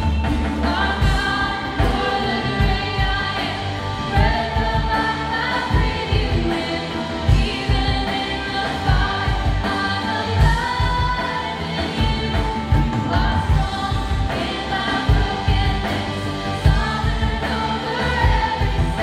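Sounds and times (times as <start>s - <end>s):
drum kit: 0.0s - 19.0s
women singing: 0.0s - 19.0s.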